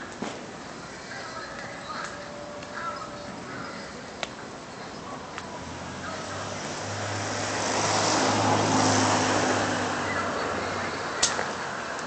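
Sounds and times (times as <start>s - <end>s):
vehicle passing by: 5.5s - 12.0s.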